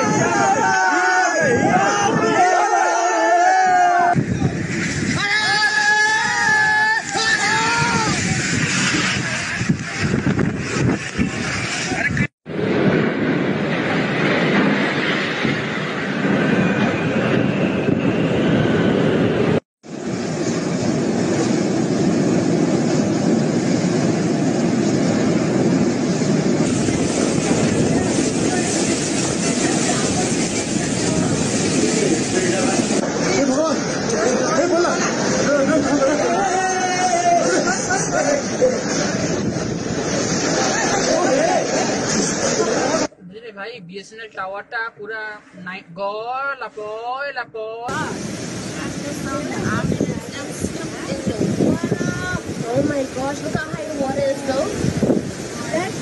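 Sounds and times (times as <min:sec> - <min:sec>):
voices shouting: 0:00.0 - 0:04.2
wind and rain on microphone: 0:00.0 - 0:43.2, 0:46.4 - 0:56.0.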